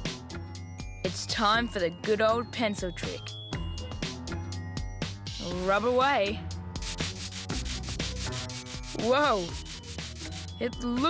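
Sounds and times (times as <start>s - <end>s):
pencil scratching on paper: 6.8s - 10.5s.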